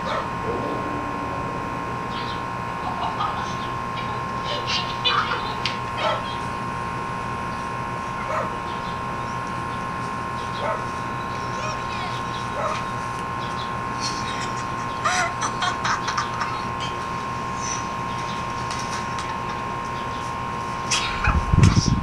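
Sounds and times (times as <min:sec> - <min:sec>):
steady high hum: 0:00.0 - 0:22.0
dog barking: 0:06.0 - 0:06.4, 0:08.2 - 0:08.6, 0:10.6 - 0:11.0, 0:12.6 - 0:12.9.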